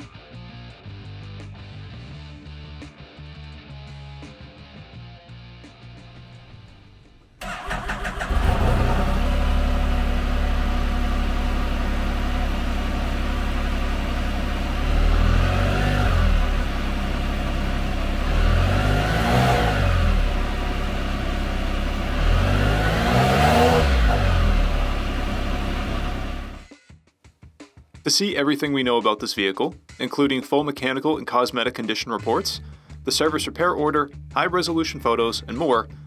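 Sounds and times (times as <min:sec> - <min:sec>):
engine idling: 0:06.3 - 0:26.7
engine starter cranking: 0:07.4 - 0:09.5
engine revving: 0:07.4 - 0:26.7.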